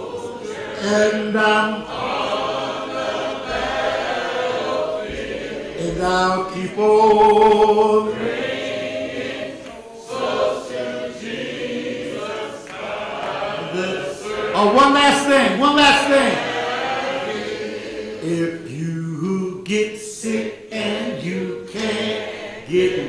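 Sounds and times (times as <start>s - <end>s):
voices singing a hymn: 0.0s - 23.0s.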